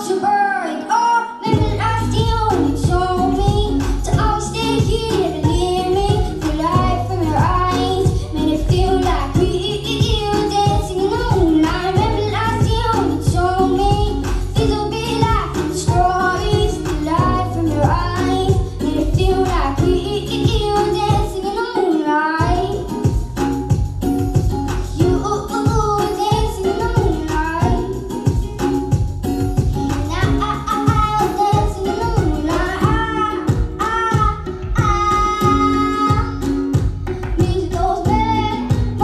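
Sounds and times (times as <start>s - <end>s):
girl singing into microphone: 0.0s - 23.8s, 24.4s - 29.0s, 29.6s - 39.0s
backing music with bass pulse: 1.5s - 21.5s, 22.4s - 39.0s.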